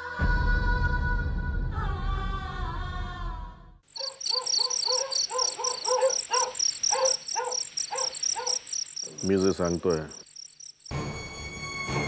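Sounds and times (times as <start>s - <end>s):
crickets chirping: 3.9s - 11.7s
lower repeated insect call: 3.9s - 11.8s.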